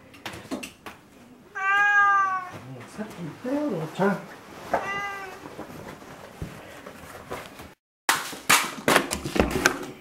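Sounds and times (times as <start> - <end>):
cat meowing: 1.5 - 2.6, 4.7 - 5.5.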